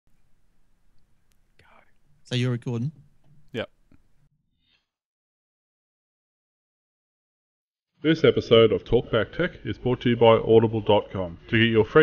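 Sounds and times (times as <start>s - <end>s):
faint whispering voice: 1.6s - 2.9s.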